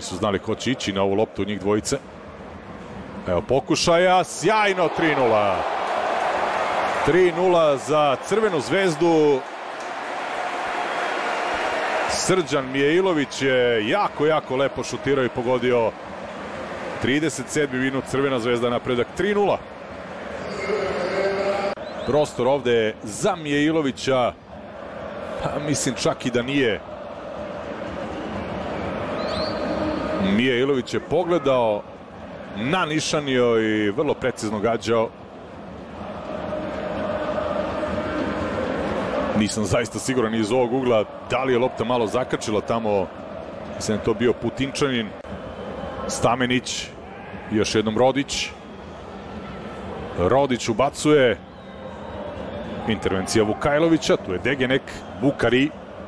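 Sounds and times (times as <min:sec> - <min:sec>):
stadium crowd cheering: 0:00.0 - 0:56.0.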